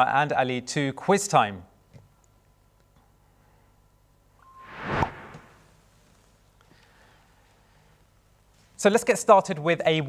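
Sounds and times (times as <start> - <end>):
whoosh with sharp hit: 4.4 - 5.7.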